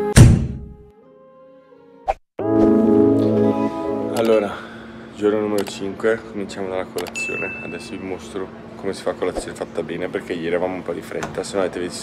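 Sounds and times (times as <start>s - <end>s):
heavy thud: 0.1s - 0.8s
intro music: 2.4s - 4.5s.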